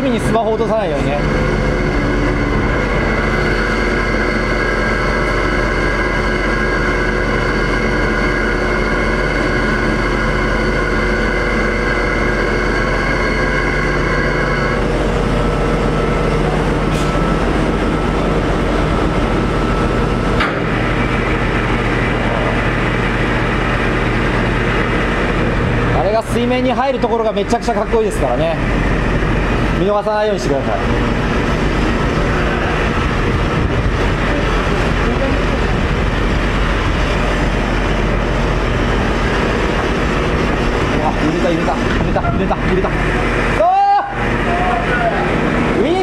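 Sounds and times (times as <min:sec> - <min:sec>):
crane and winch machinery rumble: 0:00.0 - 0:46.0
rushing noise: 0:00.0 - 0:46.0
steady humming tones: 0:00.0 - 0:46.0.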